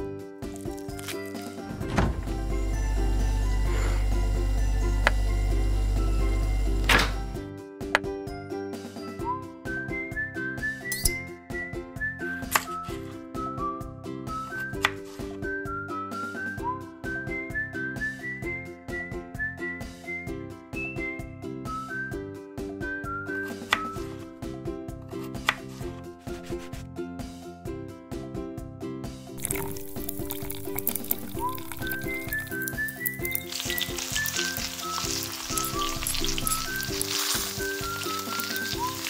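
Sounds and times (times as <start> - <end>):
background music: 0.0 - 39.0
whistled melody over chords: 9.0 - 24.2, 29.5 - 39.0
knife chopping on cutting board: 25.3 - 26.8.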